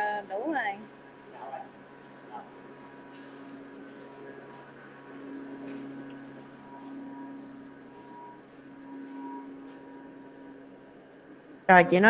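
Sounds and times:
faint background hum: 0.0s - 12.0s
low held tones: 0.0s - 12.0s.

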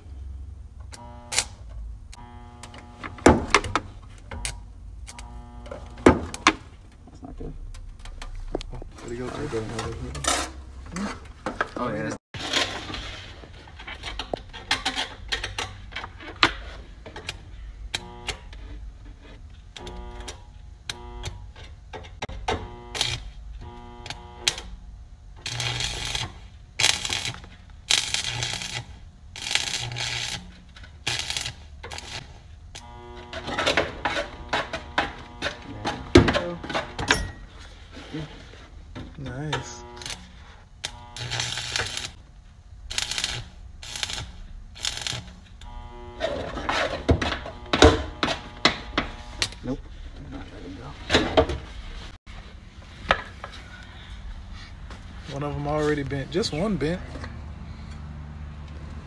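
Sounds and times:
welding arc crackling: 1.0s - 1.6s, 2.2s - 6.8s, 22.5s - 37.0s, 39.4s - 42.2s, 42.8s - 49.8s.

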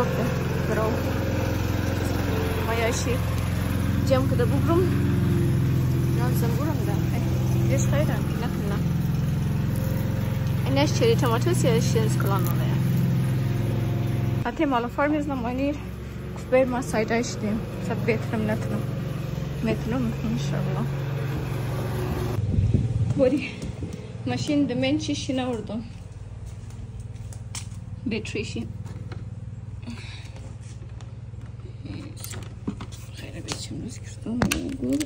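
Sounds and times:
lawn mower engine running: 0.0s - 35.0s.

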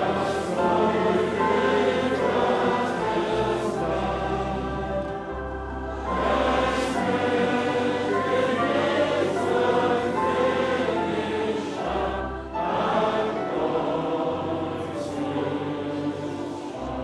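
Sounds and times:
choir singing a slow hymn: 0.0s - 17.0s.

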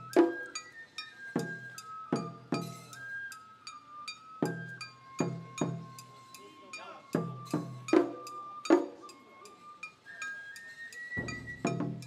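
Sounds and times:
bamboo flute melody: 0.0s - 12.0s.

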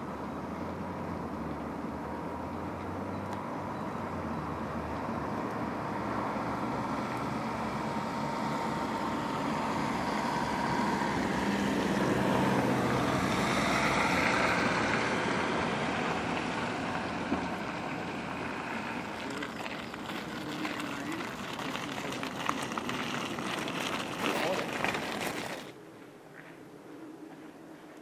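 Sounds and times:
vehicle passing: 0.0s - 25.8s.

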